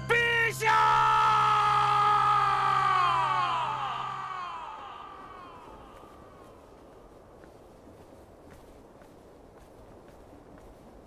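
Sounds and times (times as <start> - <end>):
low background music: 0.0 - 5.1
man crying out in anguish: 0.2 - 6.4.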